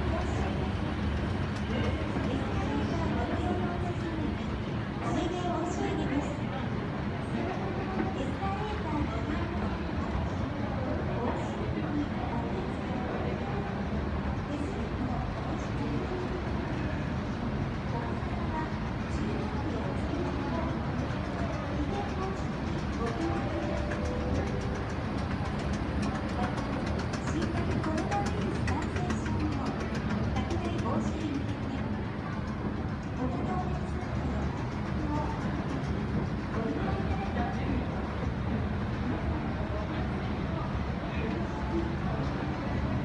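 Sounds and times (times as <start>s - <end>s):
indistinct voices: 14.3s - 43.0s
escalator humming: 14.7s - 43.0s.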